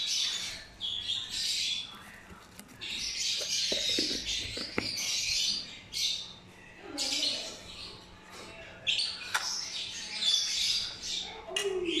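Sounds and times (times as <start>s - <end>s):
lovebirds squawking and chirping: 0.0s - 6.4s.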